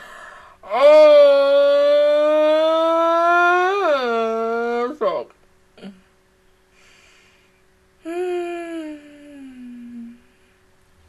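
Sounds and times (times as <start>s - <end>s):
woman wailing: 8.1s - 10.2s.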